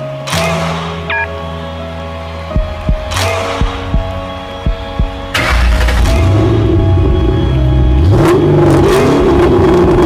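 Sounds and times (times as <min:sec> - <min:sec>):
synth music: 0:00.0 - 0:10.0
heartbeat thumps: 0:02.6 - 0:05.3
car engine rumble: 0:03.7 - 0:10.0.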